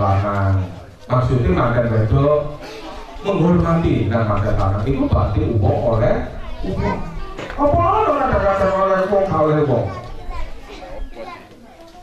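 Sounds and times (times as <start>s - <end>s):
background chatter of guests: 0.0s - 12.0s
children's voices: 0.0s - 12.0s.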